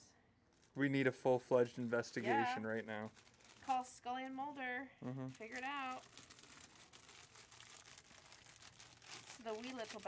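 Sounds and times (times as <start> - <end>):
plastic bag crackling: 0.5 - 10.0.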